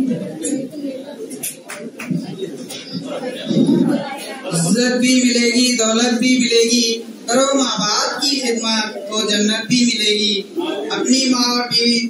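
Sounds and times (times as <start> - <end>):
indistinct low voices: 0.0 - 12.0.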